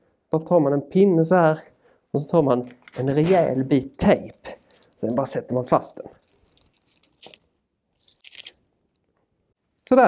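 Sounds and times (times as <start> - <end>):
adhesive tape crinkling: 2.7 - 5.5, 6.1 - 9.1.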